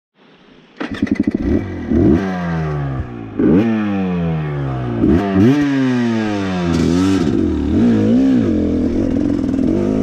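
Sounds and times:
dirt bike engine revving: 0.8s - 10.0s.

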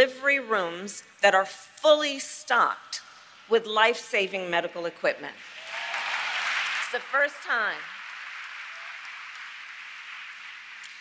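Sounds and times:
audience applauding: 5.5s - 11.0s.

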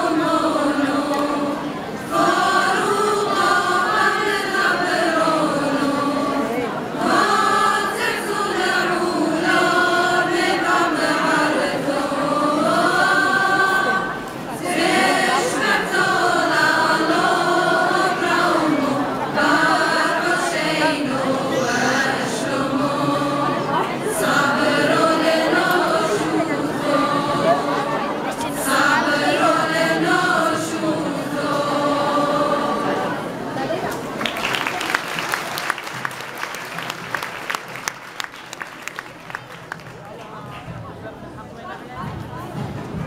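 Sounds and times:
women's choir singing in unison: 0.0s - 33.8s.

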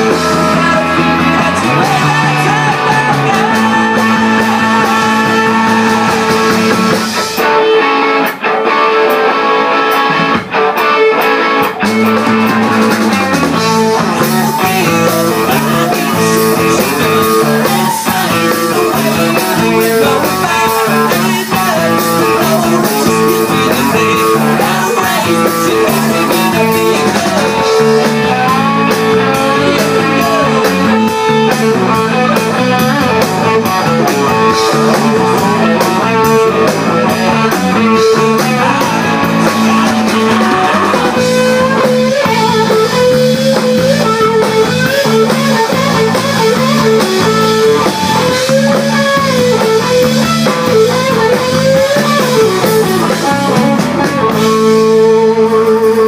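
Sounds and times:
drum kit: 0.0s - 56.0s
electric guitars: 0.0s - 56.0s.

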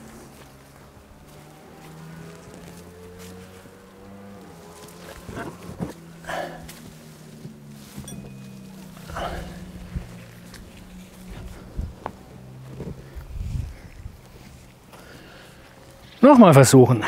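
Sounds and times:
leaves and branches rustling: 0.0s - 17.0s
steady low hum: 2.2s - 16.2s.

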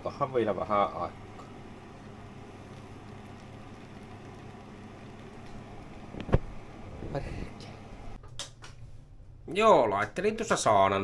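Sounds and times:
steam juicer hissing: 0.0s - 8.2s.

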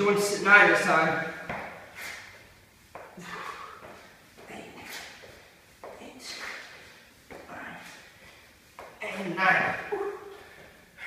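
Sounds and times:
man breathing hard: 3.2s - 5.2s.

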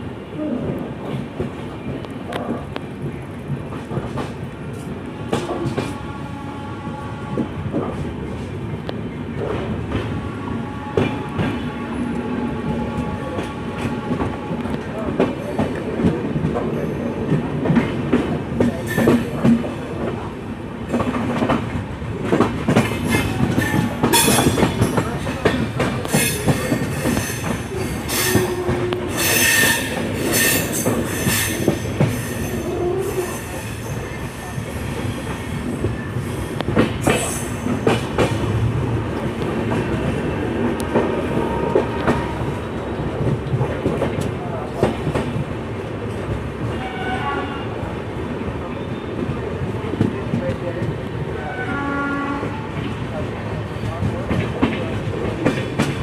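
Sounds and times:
train coach rumbling on track: 0.0s - 56.0s.

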